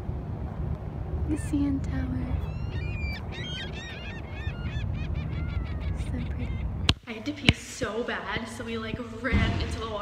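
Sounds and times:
steady low rumble: 0:00.0 - 0:10.0
waterbirds calling: 0:01.3 - 0:08.4.

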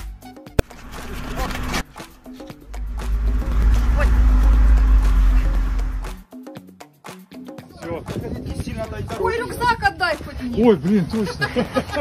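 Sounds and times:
background music: 0:00.0 - 0:12.0
loud low rumble and rushing: 0:00.6 - 0:06.3.

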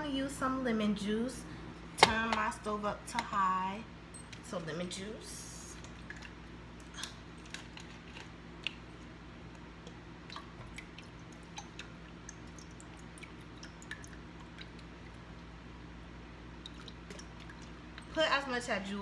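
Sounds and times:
steady low hum: 0:00.0 - 0:19.0
faint drips into water: 0:09.5 - 0:15.3, 0:16.5 - 0:18.2.

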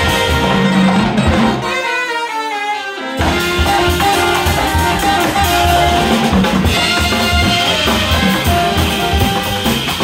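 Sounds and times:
jazz big band playing: 0:00.0 - 0:10.0.

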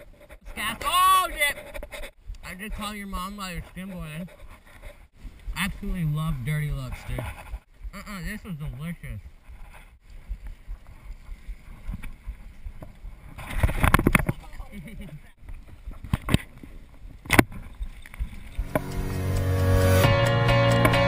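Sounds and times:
wind buffeting microphone: 0:09.2 - 0:14.7
music: 0:18.6 - 0:21.0.

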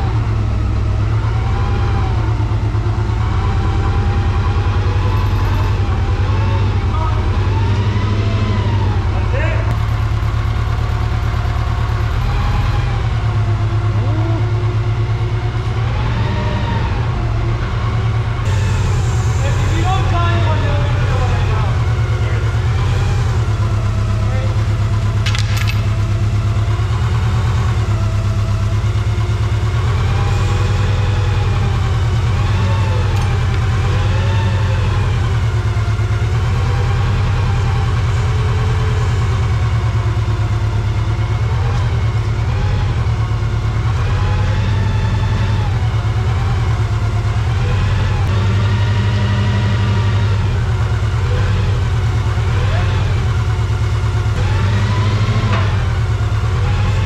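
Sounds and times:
forklift engine idling: 0:00.0 - 0:57.0.

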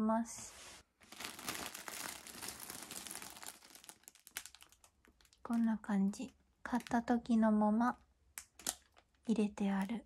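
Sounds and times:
plastic bags crinkling: 0:01.0 - 0:07.2.

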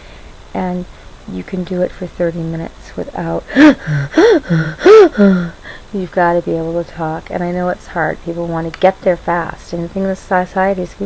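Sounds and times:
woman gasping breaths: 0:03.5 - 0:05.9.

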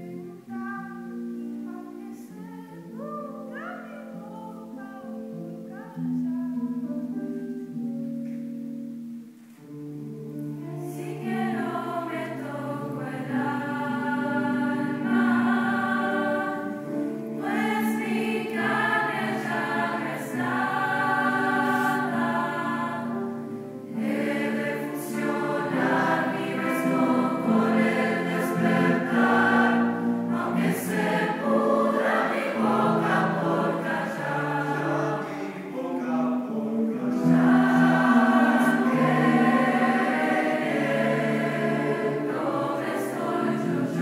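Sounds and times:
young choir singing: 0:10.6 - 0:44.0.

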